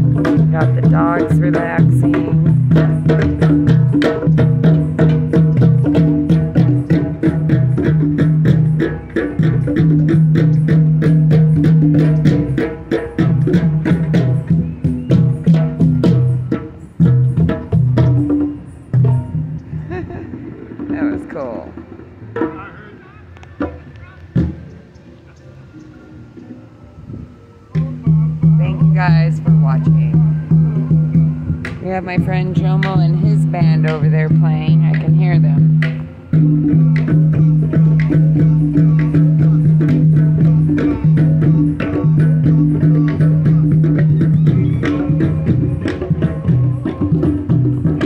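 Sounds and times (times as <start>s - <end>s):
hand drums struck: 0.0s - 22.7s, 27.7s - 48.0s
live band playing: 0.0s - 24.7s, 26.0s - 48.0s
percussive strikes: 0.0s - 24.8s, 27.7s - 48.0s
faint music: 13.2s - 39.9s
faint voices: 19.6s - 36.7s.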